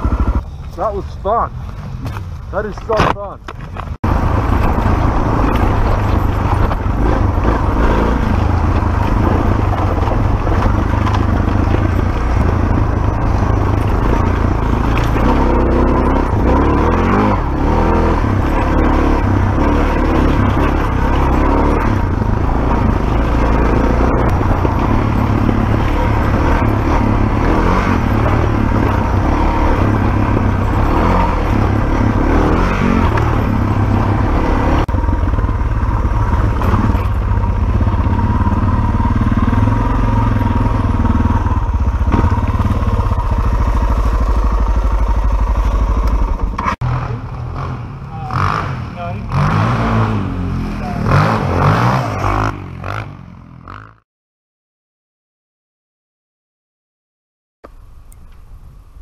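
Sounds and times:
dirt bike engine running: 0.0 - 54.0
voices: 2.5 - 3.5, 48.0 - 49.5, 50.6 - 51.3.

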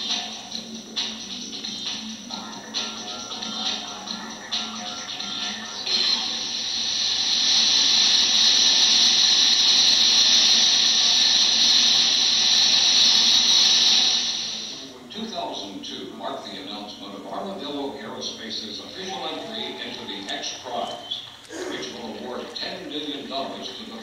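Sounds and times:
rocket engine hiss: 5.8 - 15.0.

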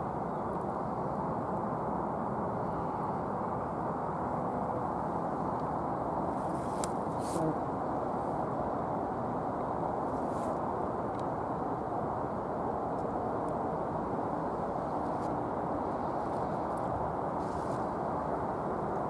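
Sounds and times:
distant road traffic roar: 0.0 - 19.0.

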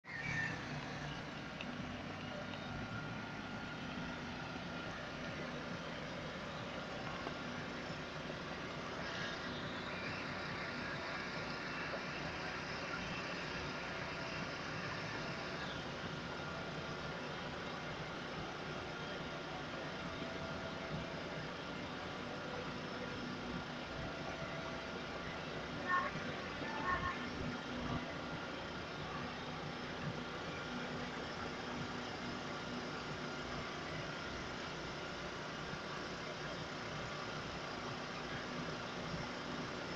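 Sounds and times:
vehicle engines idling: 0.0 - 39.9.

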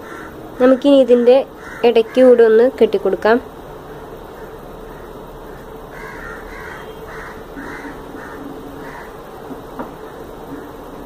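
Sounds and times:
bird calling: 0.0 - 2.6, 3.7 - 11.0.

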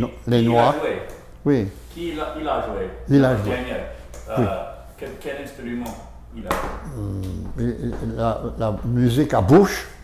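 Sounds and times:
elderly man saying euh: 6.8 - 7.9.

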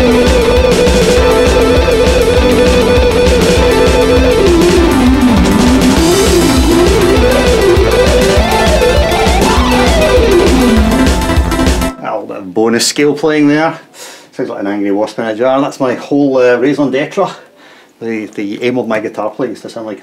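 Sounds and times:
fast picked electric guitar: 0.0 - 11.9.

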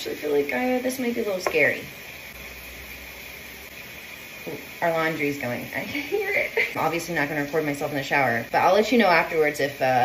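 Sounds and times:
woman speaking: 0.0 - 1.9, 4.4 - 10.0.

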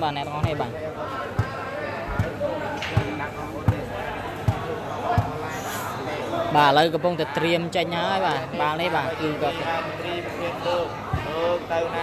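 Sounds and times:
murmur of talk in hall: 0.0 - 12.0
volleyball bouncing on floor: 0.3 - 0.7, 1.3 - 5.4.

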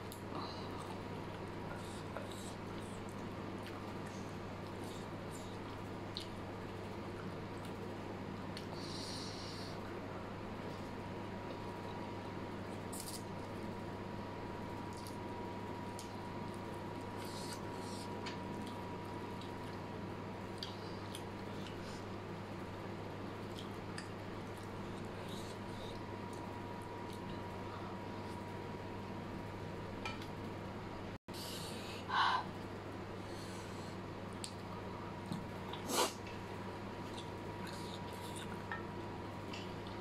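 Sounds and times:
steady background hum: 0.0 - 40.0
faint sniff: 35.8 - 36.2.

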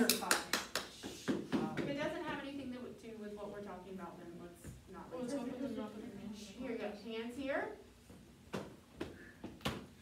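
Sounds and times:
people talking: 0.0 - 7.8.

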